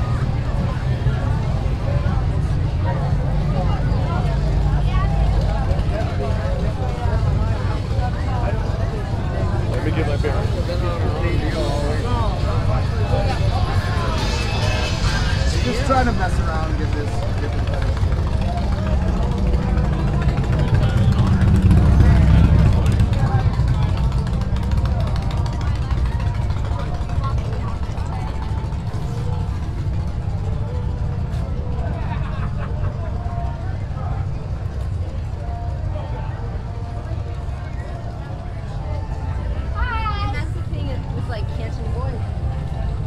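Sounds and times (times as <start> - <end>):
motorcycle engine rumble: 0.0 - 40.0
crowd chatter: 0.0 - 43.0.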